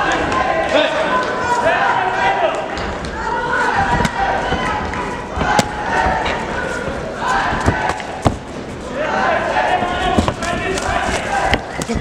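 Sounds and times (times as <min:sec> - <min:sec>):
voices shouting: 0:00.0 - 0:08.3, 0:08.9 - 0:12.0.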